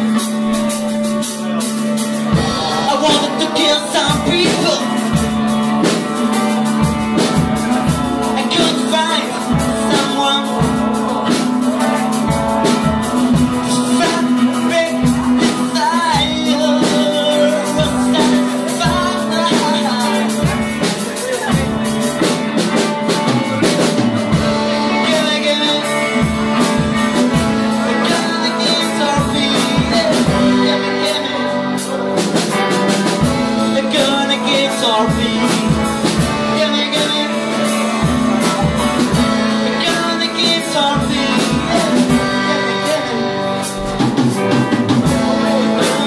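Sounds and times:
drum kit with cymbal hits: 0:00.0 - 0:46.0
sustained electric guitar: 0:00.0 - 0:46.0.

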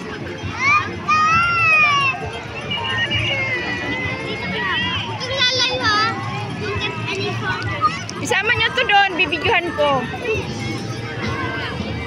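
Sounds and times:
children calling and squealing: 0:00.0 - 0:12.0
crowd chatter: 0:00.0 - 0:12.0.

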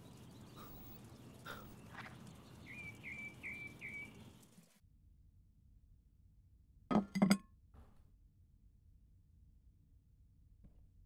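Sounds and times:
bird chirping: 0:00.0 - 0:04.7
faint outdoor ambience: 0:00.0 - 0:04.8.

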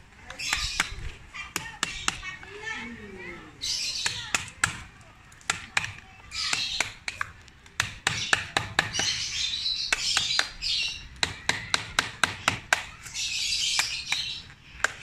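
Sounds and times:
birds chirping: 0:00.0 - 0:15.0
mallet striking wood chisel: 0:05.5 - 0:09.2, 0:11.2 - 0:12.9.

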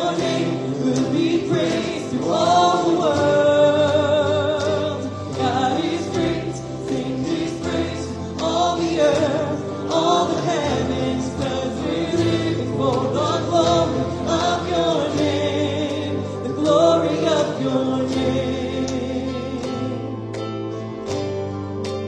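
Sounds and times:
man singing into a microphone: 0:00.0 - 0:20.0
acoustic guitars and keyboard: 0:00.0 - 0:22.0.

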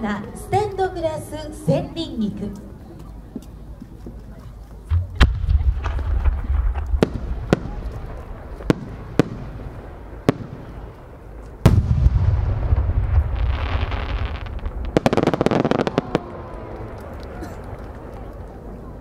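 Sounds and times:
firework boom with low rumble: 0:04.9 - 0:18.2
sharp firework pops: 0:04.9 - 0:18.6.

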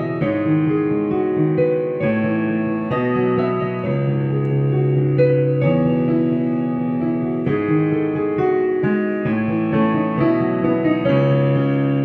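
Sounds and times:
electric piano chords: 0:00.0 - 0:12.0.

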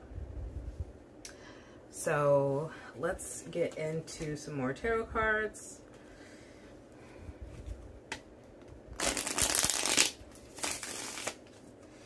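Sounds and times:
cards shuffling: 0:09.0 - 0:11.6.

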